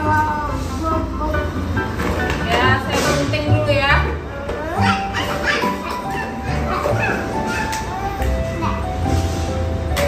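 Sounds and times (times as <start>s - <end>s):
child's high vocal sounds: 4.4s - 8.9s.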